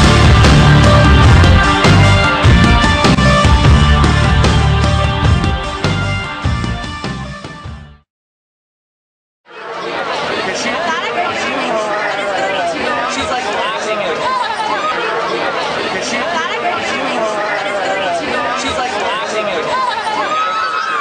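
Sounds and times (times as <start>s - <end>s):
crowd chatter: 9.5s - 21.0s.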